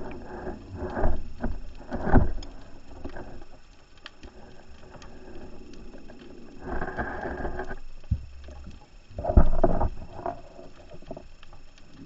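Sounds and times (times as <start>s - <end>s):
diver inhaling through regulator: 4.9s - 7.8s.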